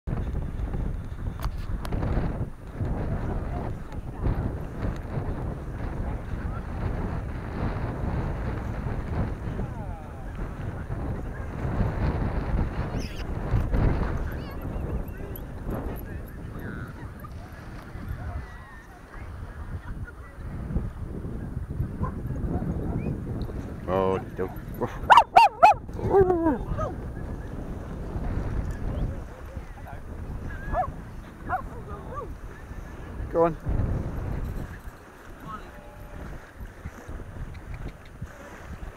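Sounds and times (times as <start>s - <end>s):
wind buffeting microphone: 0.1s - 38.9s
dog whining: 25.1s - 26.9s.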